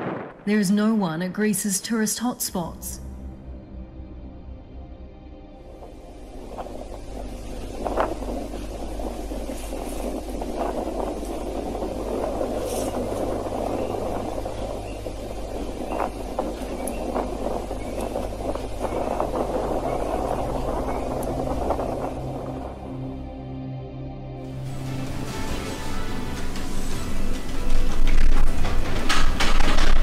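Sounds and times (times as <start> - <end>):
sharp cracks: 0.0 - 0.6, 27.7 - 30.0
volcano rushing rumble: 0.0 - 1.1, 5.6 - 23.7, 24.4 - 30.0
low music drone: 2.2 - 30.0.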